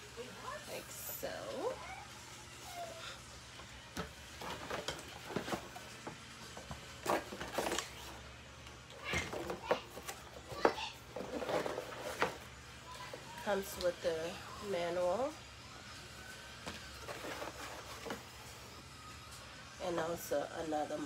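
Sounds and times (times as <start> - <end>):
cardboard box rustling: 6.7 - 8.2, 11.1 - 12.5, 17.0 - 18.3.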